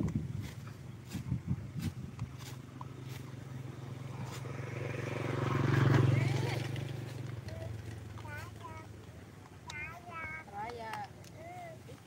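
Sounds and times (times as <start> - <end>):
vehicle engine passing by: 0.4 - 9.4.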